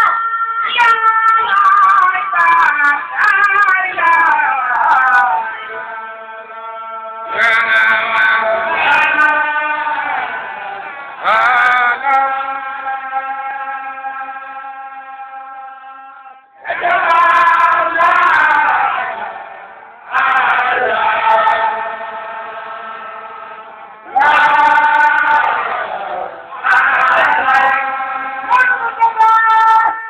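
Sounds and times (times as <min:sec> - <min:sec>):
men chanting in long sung phrases: 0:04.8 - 0:29.9.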